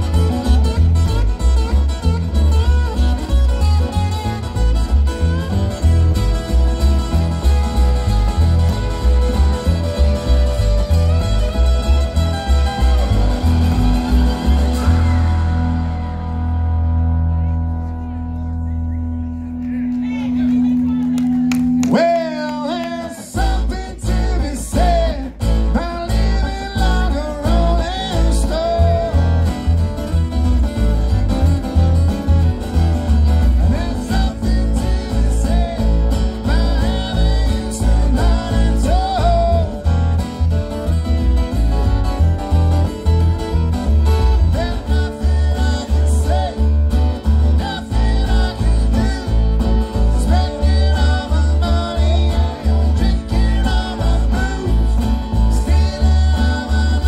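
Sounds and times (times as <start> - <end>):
acoustic string band playing: 0.0 - 19.2, 19.8 - 57.0
upright bass pulse: 0.0 - 57.0.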